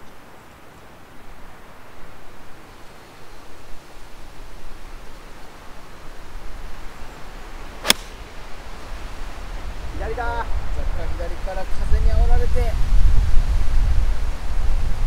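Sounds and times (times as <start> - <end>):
wind rumbling on microphone: 5.9 - 15.0
golf club striking ball: 7.8 - 8.4.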